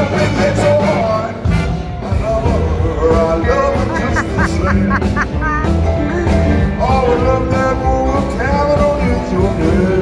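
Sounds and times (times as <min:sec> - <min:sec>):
blues band playing: 0:00.0 - 0:10.0.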